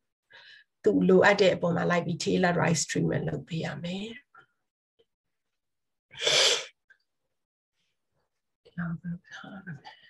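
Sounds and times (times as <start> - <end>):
sneeze-like burst of breath: 6.2 - 6.8.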